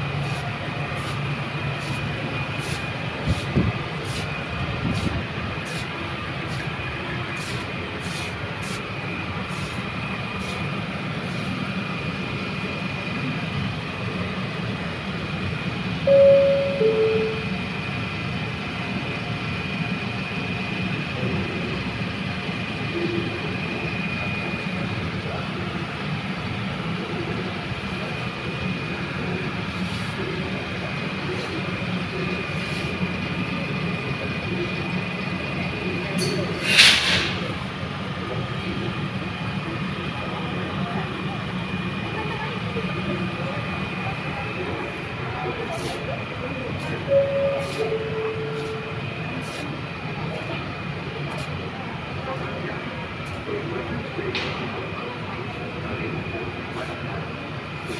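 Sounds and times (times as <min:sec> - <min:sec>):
steady rumble: 0:00.0 - 0:18.6
faint high whine: 0:16.0 - 0:18.3, 0:46.9 - 0:50.3.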